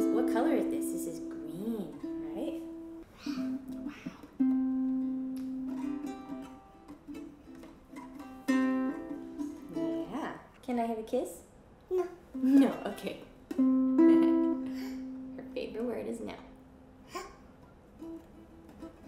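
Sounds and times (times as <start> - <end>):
ukulele strummed: 0.0 - 10.3, 12.3 - 19.0
small child's voice: 11.9 - 12.3, 17.1 - 17.4.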